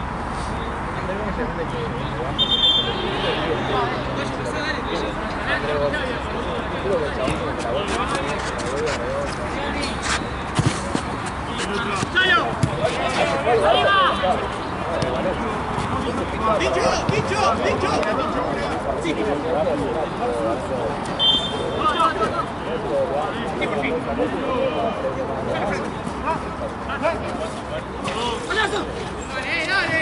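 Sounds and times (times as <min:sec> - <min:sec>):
players shouting: 0:09.6 - 0:18.7, 0:28.0 - 0:30.0
ball kicked on artificial turf: 0:11.9 - 0:12.9.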